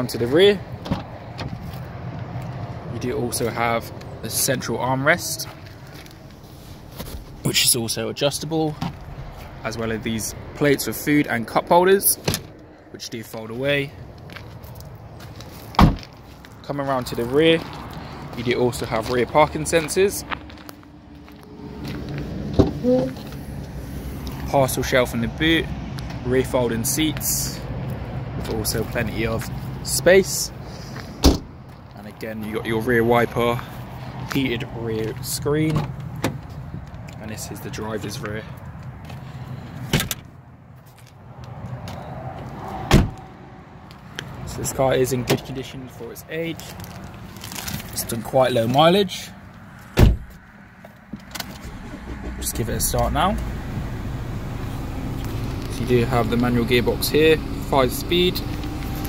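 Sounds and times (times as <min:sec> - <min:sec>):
handling and shuffling noise: 0:05.4 - 0:07.5, 0:46.5 - 0:48.2
car door shutting with thud: 0:15.8 - 0:16.1, 0:31.2 - 0:31.5, 0:42.9 - 0:43.2, 0:50.0 - 0:50.4.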